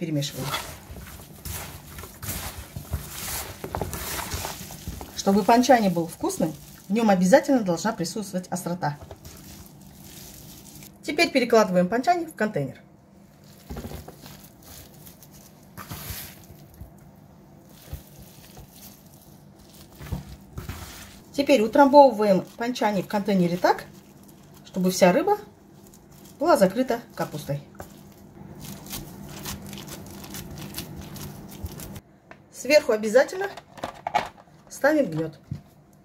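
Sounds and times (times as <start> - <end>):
wet squishing of mixture: 0.1 - 11.1, 13.3 - 32.0.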